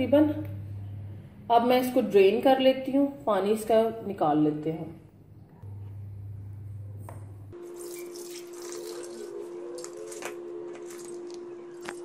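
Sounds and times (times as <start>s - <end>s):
steady hum: 0.0s - 2.1s, 5.0s - 12.0s.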